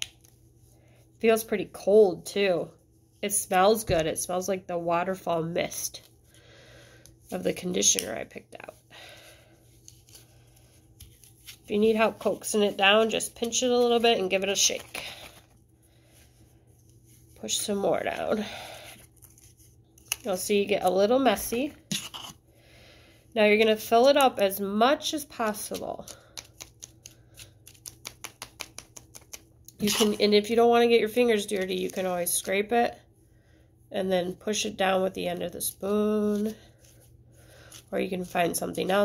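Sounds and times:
low room hum: 0:00.0 - 0:39.0.

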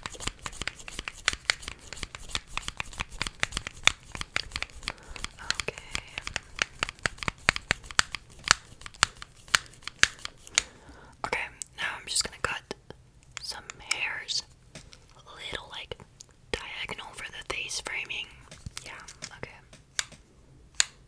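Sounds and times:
crinkling: 0:00.0 - 0:11.2, 0:17.8 - 0:20.3
soft whispering: 0:04.9 - 0:06.5, 0:10.9 - 0:19.7.

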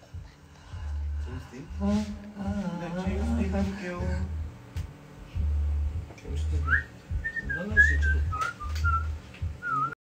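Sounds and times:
low bass notes: 0:00.0 - 0:09.9
person whistling a tune: 0:06.6 - 0:10.0.

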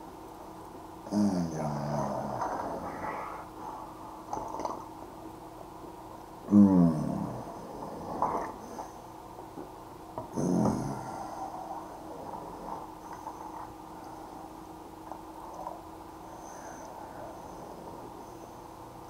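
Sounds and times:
faint hum: 0:00.0 - 0:19.0.

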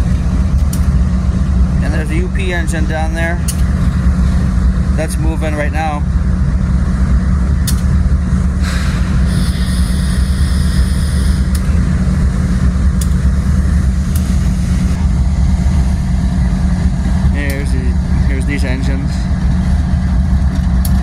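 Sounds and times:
diesel locomotive rumbling: 0:00.0 - 0:21.0
high-pitched squeal: 0:08.6 - 0:11.6.

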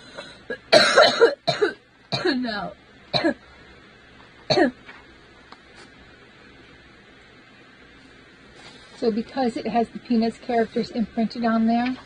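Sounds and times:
woman coughing: 0:00.5 - 0:02.5, 0:03.2 - 0:03.4, 0:04.5 - 0:04.8.

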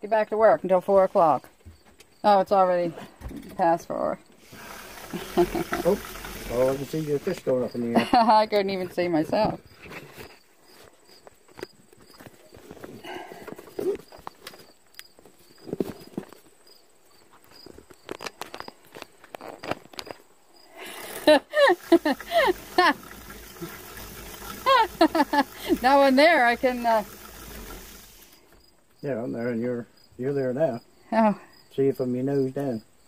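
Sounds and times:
people talking: 0:00.0 - 0:01.4, 0:02.2 - 0:03.0, 0:03.6 - 0:04.2, 0:05.2 - 0:09.6, 0:24.7 - 0:27.1
person laughing loudly: 0:05.1 - 0:05.9, 0:08.0 - 0:08.4, 0:20.8 - 0:23.0, 0:24.6 - 0:25.8.

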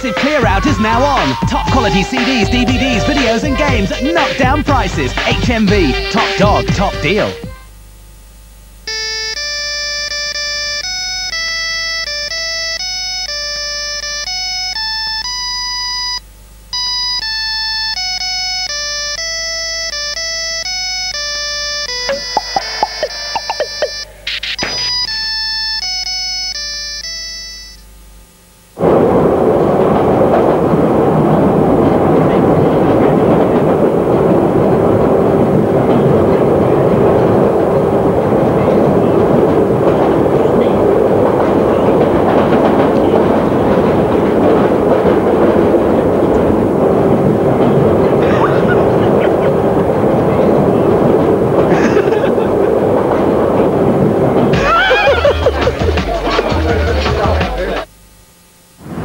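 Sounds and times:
underground train rumbling and rattling: 0:00.0 - 0:07.5, 0:28.8 - 0:58.0
beeping phone ringtone: 0:16.8 - 0:27.9.

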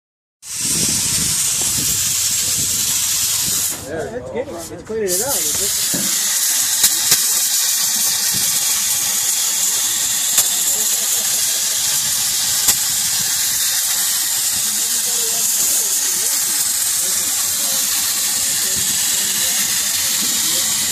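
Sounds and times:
compressed air hissing: 0:00.4 - 0:04.0, 0:04.6 - 0:20.9.

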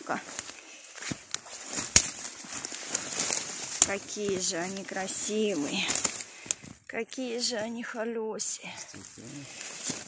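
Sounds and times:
dry twigs and leaves crackling: 0:00.0 - 0:10.0.

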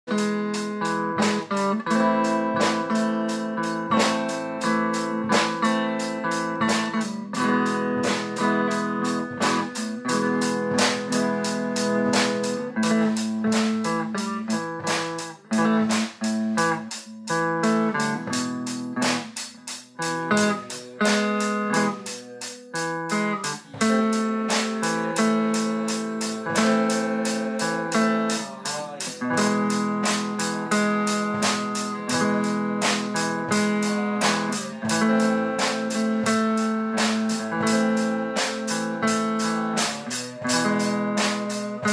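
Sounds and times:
drum kit cymbal beat: 0:00.0 - 0:41.9
guitar sustained chords: 0:00.1 - 0:19.0, 0:19.9 - 0:41.9.

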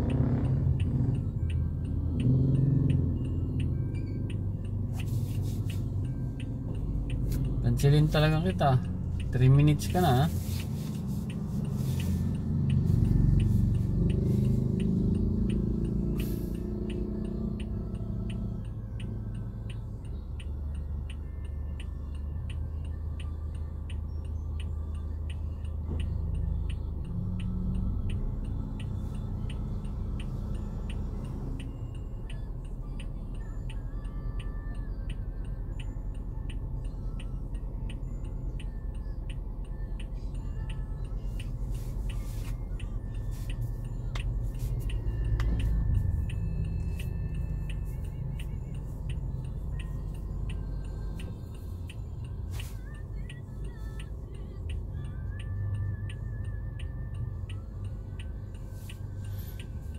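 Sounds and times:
indicator relay ticking: 0:00.0 - 0:10.3, 0:11.2 - 0:42.2, 0:42.8 - 0:59.9
car engine idling: 0:00.0 - 0:21.2.

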